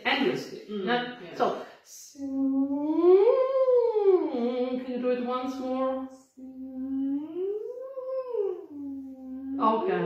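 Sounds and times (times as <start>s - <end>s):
woman humming a siren slide: 2.2s - 4.8s, 6.4s - 9.8s.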